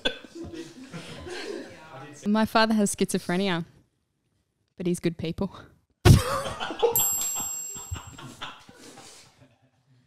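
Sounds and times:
people laughing: 0.0 - 2.0, 6.1 - 9.8.

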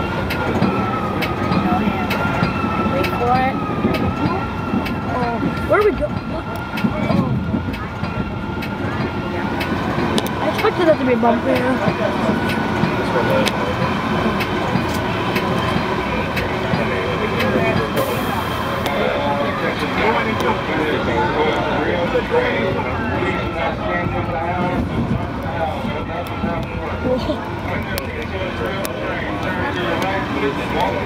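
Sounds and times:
indistinct voices: 0.0 - 31.0
train running rumble: 0.0 - 31.0
wheels clicking on rails: 0.0 - 31.0.

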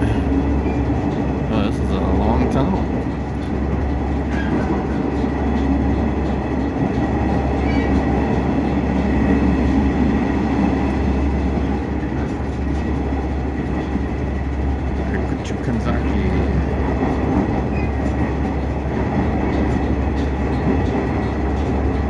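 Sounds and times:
railcar engine and wheels rumbling: 0.0 - 22.0.

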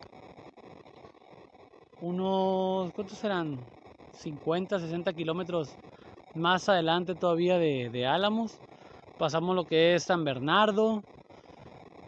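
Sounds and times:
open-air ambience hiss: 0.0 - 12.0.

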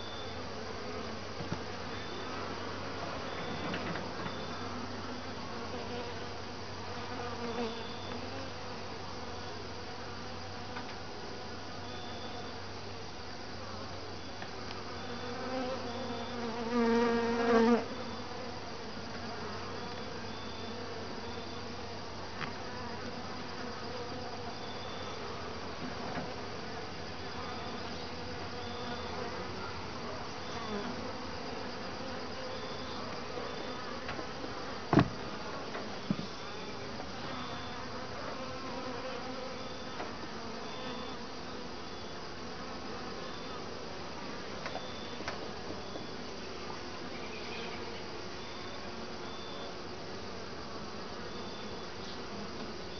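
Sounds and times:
bee passing close by: 0.0 - 9.3, 14.8 - 44.5
honeybees buzzing: 0.0 - 52.9.

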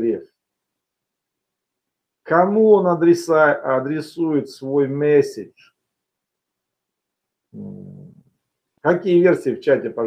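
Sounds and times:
man humming: 7.6 - 8.2.

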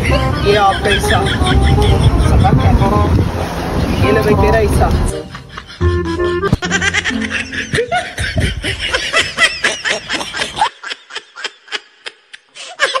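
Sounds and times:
high-pitched laughter bursts: 0.0 - 2.6, 5.2 - 13.0.

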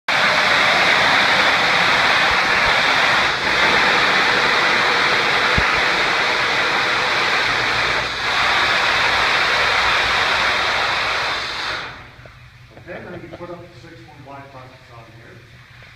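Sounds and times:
air motor rushing hiss: 0.1 - 15.9.

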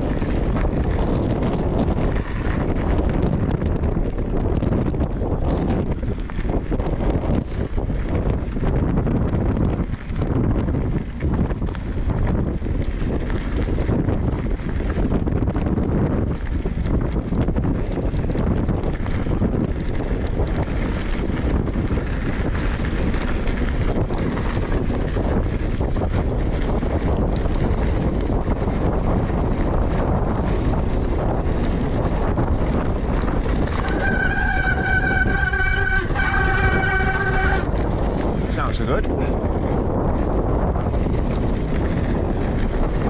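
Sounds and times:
bike rattles and clicks: 0.0 - 43.0
tyre noise on grit: 0.0 - 43.0
wind buffeting microphone: 0.0 - 43.0.

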